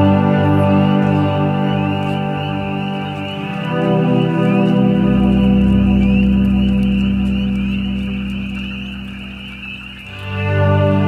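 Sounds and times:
ambient synthesizer chord: 0.0s - 11.0s
frog calls: 0.4s - 11.0s.

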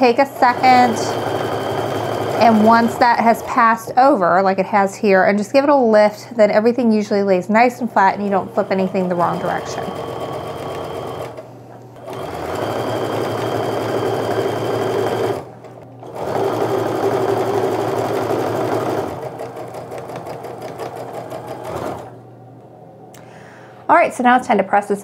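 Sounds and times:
sewing machine stitching: 0.0s - 3.9s, 8.1s - 11.4s, 12.0s - 22.2s.

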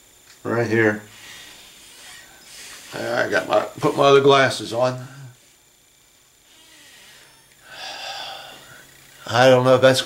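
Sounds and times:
man's snort-like exhale: 6.8s - 8.8s.

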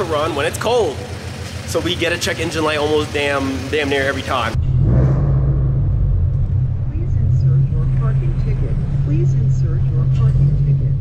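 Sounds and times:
car engine humming at low revs: 0.0s - 11.0s.

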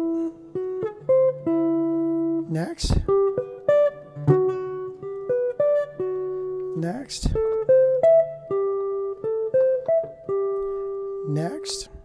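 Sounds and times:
jazz guitar picked notes: 0.0s - 12.0s.

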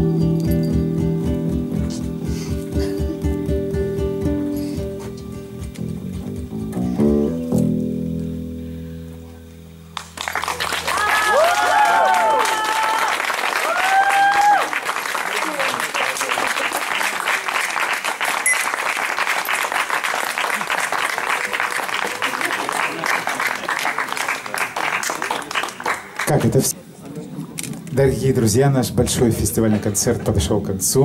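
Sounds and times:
audience applauding: 10.0s - 26.8s.

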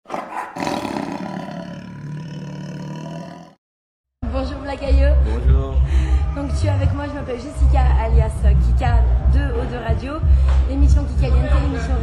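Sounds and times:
roar sound effect: 0.2s - 3.6s.

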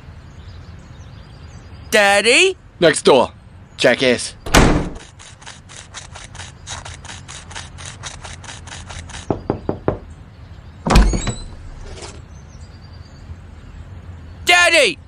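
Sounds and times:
door thumping open: 4.5s - 5.1s, 10.8s - 11.9s
quick footsteps: 4.8s - 10.0s
knocking on wooden door: 9.3s - 10.1s.

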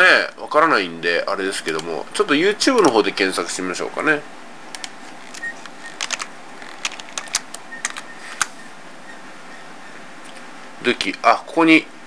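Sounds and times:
steady low hiss: 0.0s - 12.0s
keyboard keys clicking: 4.7s - 8.5s.

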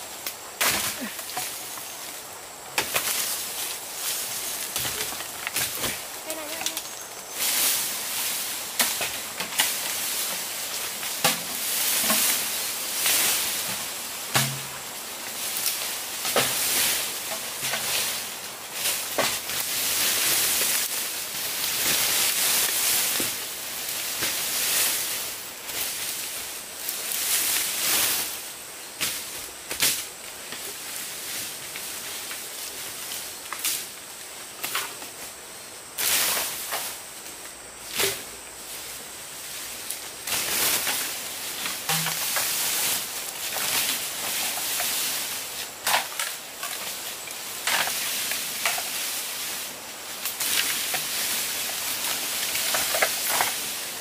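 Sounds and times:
bamboo leaves rustling: 0.0s - 54.0s
bamboo stems cracking: 40.3s - 45.2s.

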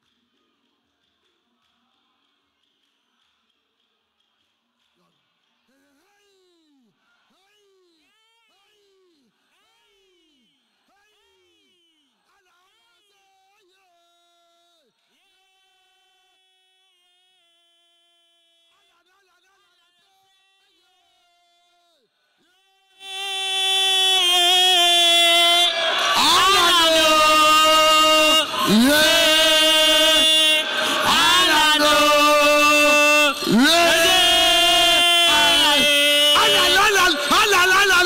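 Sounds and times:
loud chanting voices: 23.0s - 38.0s.

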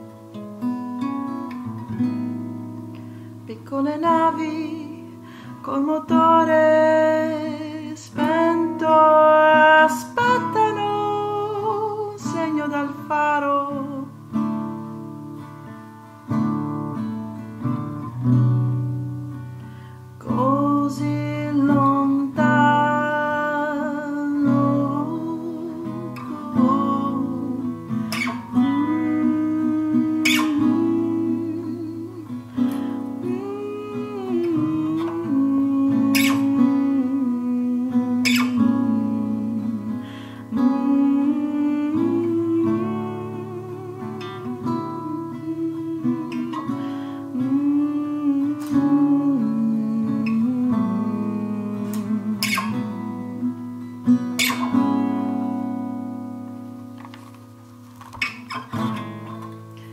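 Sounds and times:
acoustic guitar playing: 0.0s - 59.9s.

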